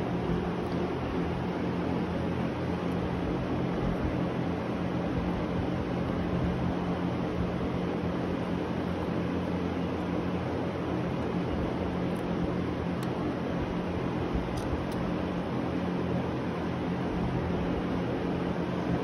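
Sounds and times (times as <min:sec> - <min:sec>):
low constant hum: 0:00.0 - 0:19.0
machine drone hiss: 0:00.0 - 0:19.0.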